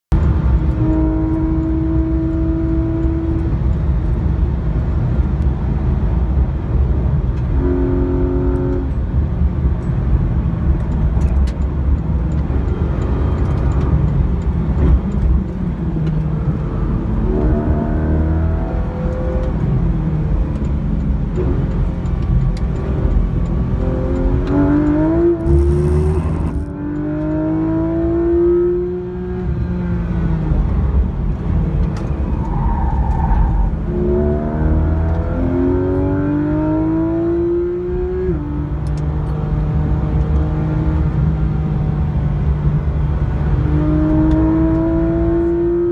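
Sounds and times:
car engine at high revs: 0.1 - 45.9
tyre and road rumble: 3.4 - 28.2.

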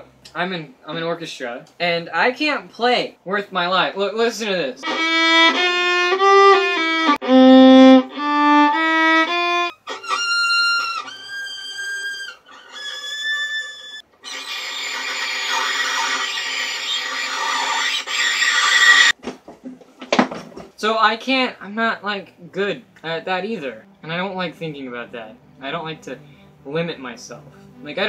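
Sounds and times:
solo violin playing: 4.8 - 14.0
harsh scratchy violin bowing: 4.8 - 19.2.

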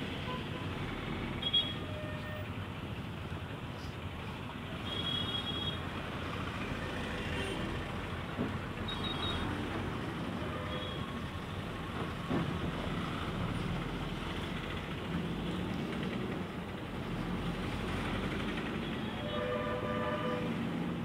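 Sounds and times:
road noise: 0.0 - 21.0.

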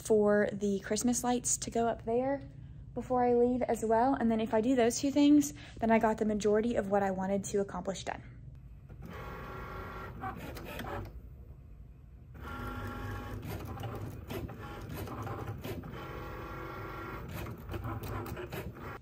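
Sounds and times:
cutting machine motors whining: 8.9 - 11.1, 12.4 - 19.0.

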